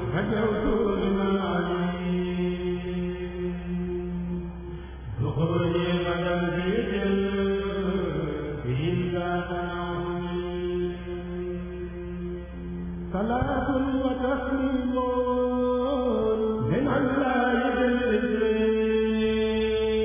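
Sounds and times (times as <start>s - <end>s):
male choir chanting a cappella: 0.0s - 4.4s.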